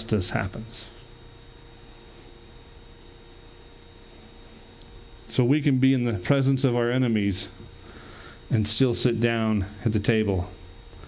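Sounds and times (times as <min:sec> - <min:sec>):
faint room hiss and hum: 0:00.0 - 0:11.0.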